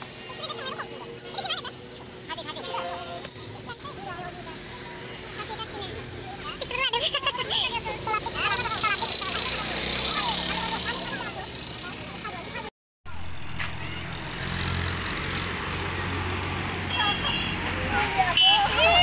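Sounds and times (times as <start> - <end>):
vehicle engines humming: 0.0 - 19.0.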